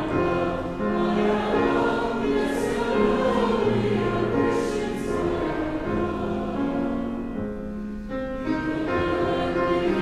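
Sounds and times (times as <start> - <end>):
choir and congregation singing hymn: 0.0 - 7.5, 8.4 - 10.0.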